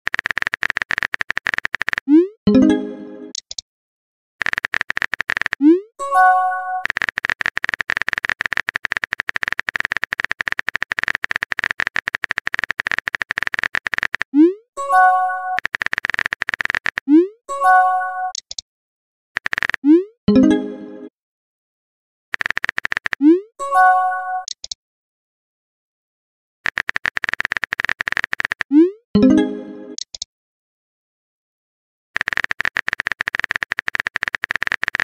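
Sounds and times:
phone keyboard typing clicks: 0:00.1 - 0:02.2, 0:03.3 - 0:03.6, 0:04.4 - 0:05.8, 0:06.7 - 0:14.4, 0:15.5 - 0:17.2, 0:18.3 - 0:18.6, 0:19.4 - 0:20.0, 0:22.4 - 0:23.3, 0:24.4 - 0:24.8, 0:26.6 - 0:28.8, 0:30.0 - 0:30.3, 0:32.2 - 0:35.0.

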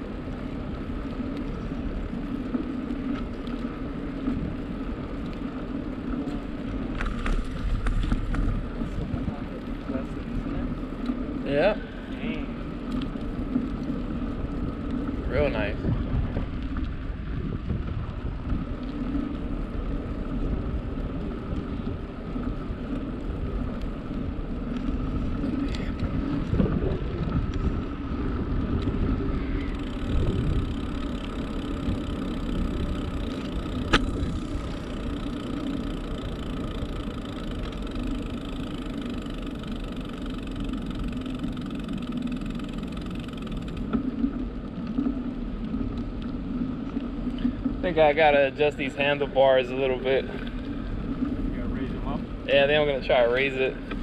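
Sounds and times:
bicycle tyre rumble: 0:00.0 - 0:54.0
wind: 0:00.0 - 0:54.0.

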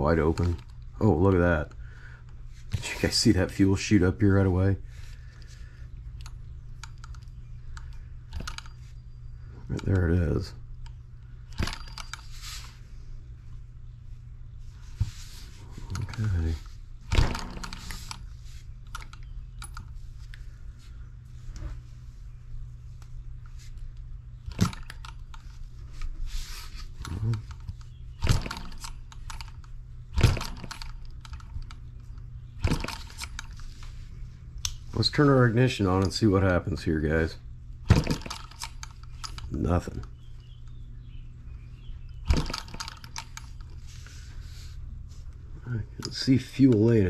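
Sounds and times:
steady low hum: 0:00.0 - 0:47.0
model engine clicks and knocks: 0:06.2 - 0:08.7, 0:11.5 - 0:12.2, 0:17.1 - 0:18.2, 0:24.4 - 0:25.5, 0:27.0 - 0:33.8, 0:37.9 - 0:40.2, 0:42.1 - 0:43.8.

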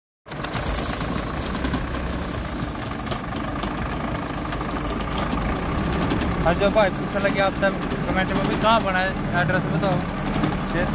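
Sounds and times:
tractor diesel engine running: 0:00.3 - 0:10.9.

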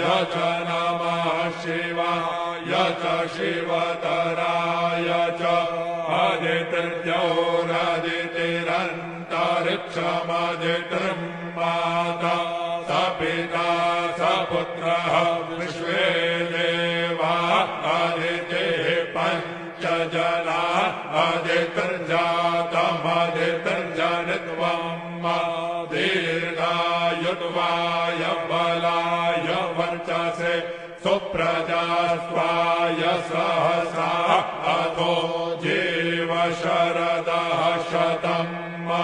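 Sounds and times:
person chanting mantras: 0:00.0 - 0:39.0.

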